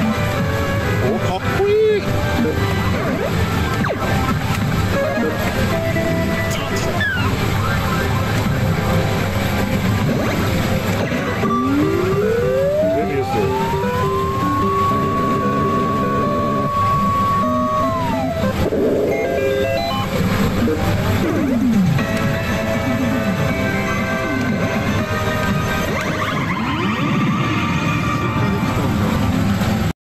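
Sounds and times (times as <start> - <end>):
slot machine electronic effects: 0.0 - 29.1.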